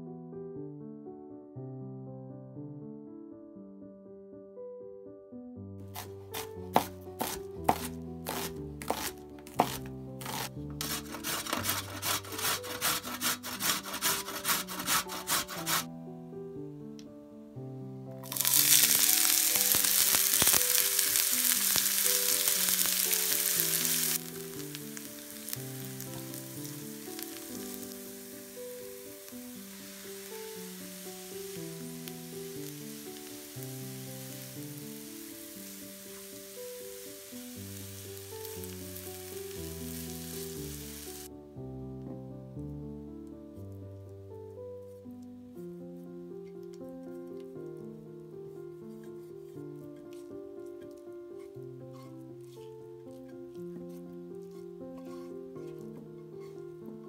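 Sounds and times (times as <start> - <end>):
background music: 0.0 - 57.0
spatula stirring: 5.9 - 15.9, 18.3 - 41.3, 48.6 - 57.0
carrot scraped on grater: 6.0 - 15.9, 50.1 - 56.7
onion sizzling in frying pan: 6.0 - 15.9, 18.2 - 41.3, 50.9 - 56.6.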